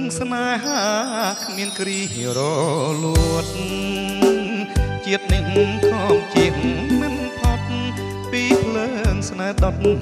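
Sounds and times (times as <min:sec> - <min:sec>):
man singing with vibrato: 0:00.0 - 0:10.0
pop band music: 0:00.0 - 0:10.0.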